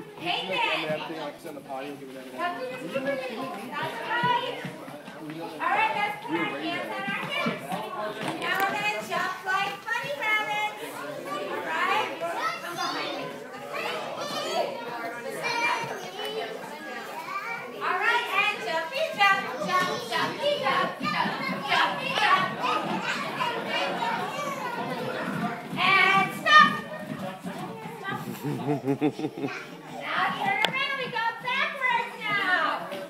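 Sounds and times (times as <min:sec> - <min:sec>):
toddlers and adults talking: 0:00.0 - 0:33.0
high children's voices: 0:09.4 - 0:32.8.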